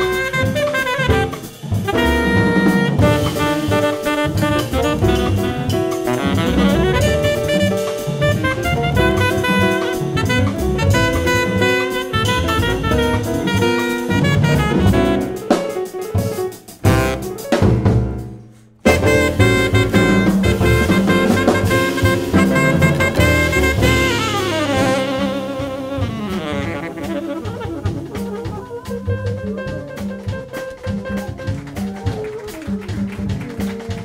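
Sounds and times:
tenor saxophone: 0:00.0 - 0:15.8, 0:16.9 - 0:17.5, 0:18.9 - 0:33.1
double bass: 0:00.0 - 0:34.0
drum kit: 0:00.0 - 0:34.0
piano: 0:00.0 - 0:34.0.

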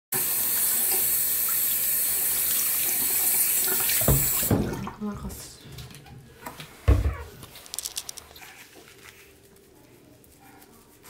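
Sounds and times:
faucet running: 0:00.1 - 0:05.0.

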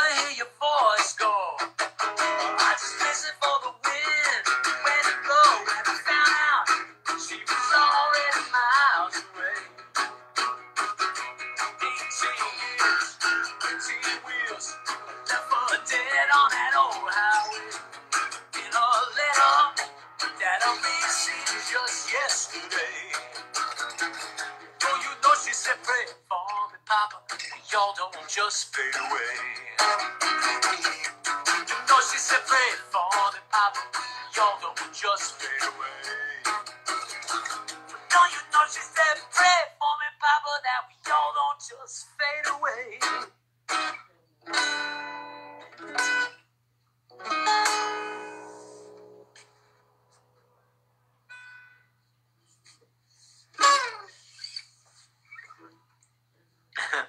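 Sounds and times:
person singing: 0:00.0 - 0:09.8, 0:11.6 - 0:23.5, 0:24.7 - 0:36.7, 0:37.9 - 0:43.2
acoustic guitar strumming: 0:00.0 - 0:41.6, 0:42.3 - 0:46.5, 0:47.1 - 0:50.3, 0:53.5 - 0:54.4.

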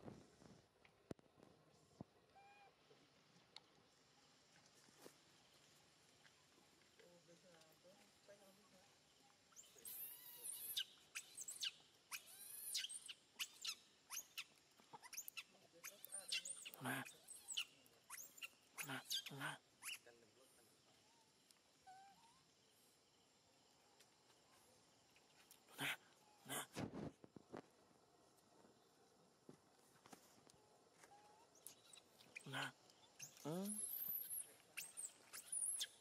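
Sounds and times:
baby monkey screaming: 0:09.6 - 0:14.4, 0:15.0 - 0:20.0, 0:25.7 - 0:26.7, 0:32.3 - 0:36.0.

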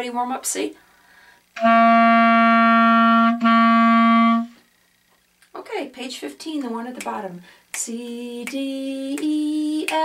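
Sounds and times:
clarinet long note: 0:01.6 - 0:04.6.

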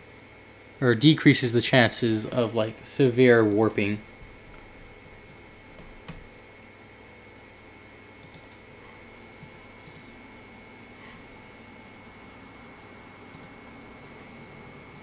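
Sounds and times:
computer mouse clicks: 0:08.2 - 0:08.6, 0:09.8 - 0:10.1, 0:13.3 - 0:13.6.

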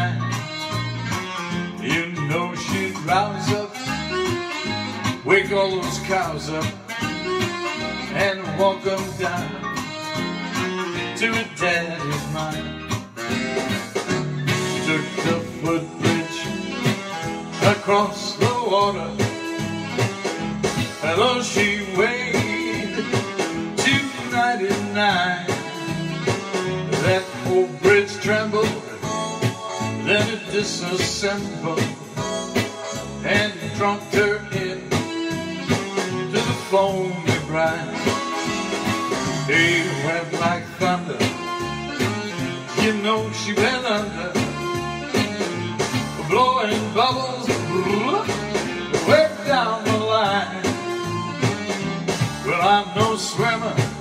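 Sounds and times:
acoustic guitar strumming: 0:20.6 - 0:25.7.

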